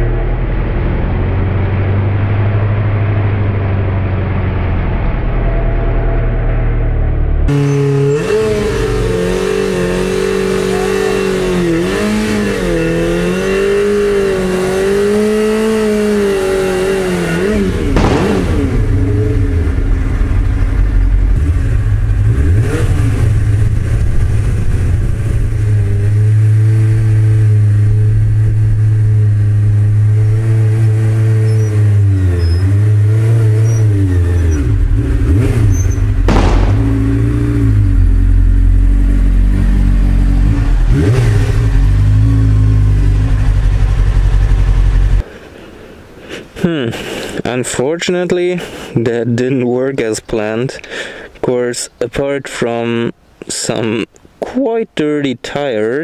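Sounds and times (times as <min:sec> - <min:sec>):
motorbike engine revving hard: 0:07.5 - 0:20.6, 0:21.2 - 0:45.2
short sharp noises: 0:35.9 - 0:37.6.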